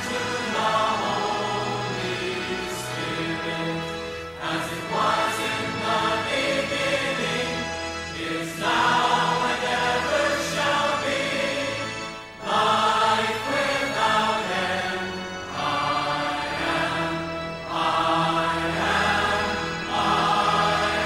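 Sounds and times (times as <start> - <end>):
choir singing: 0.0 - 21.0.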